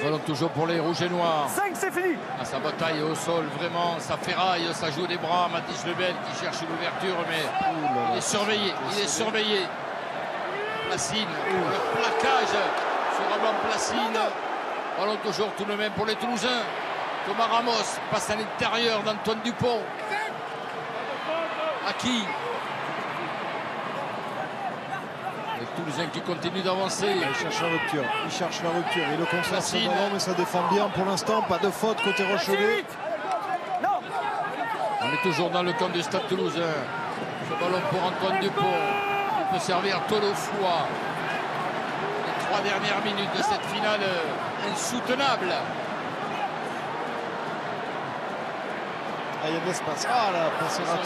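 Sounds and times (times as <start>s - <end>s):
stadium crowd din: 0.0s - 51.0s.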